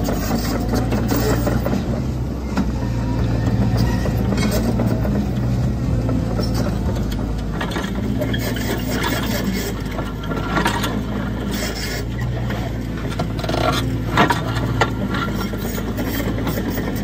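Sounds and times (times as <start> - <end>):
diesel engine running: 0.0 - 17.0.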